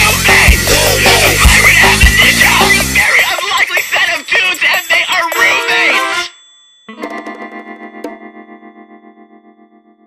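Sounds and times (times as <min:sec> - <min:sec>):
theme song singing: 0:00.0 - 0:03.9, 0:05.2 - 0:06.3.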